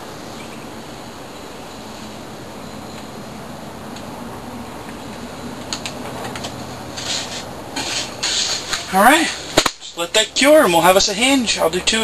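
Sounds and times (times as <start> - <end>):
hand scraping on plastic pipe: 6.4 - 9.2.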